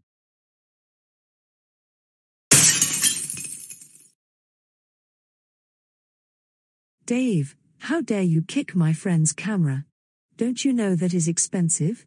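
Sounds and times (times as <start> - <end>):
glass shattering crash: 2.5 - 4.1.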